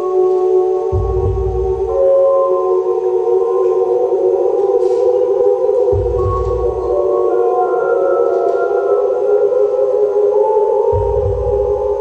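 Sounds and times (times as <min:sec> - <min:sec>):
eerie chamber music drone: 0:00.0 - 0:12.0.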